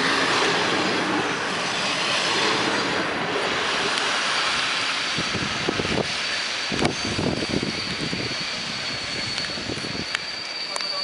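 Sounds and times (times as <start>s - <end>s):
train coaches rumbling on rails: 0.0s - 11.0s
wheel squeal: 3.7s - 11.0s.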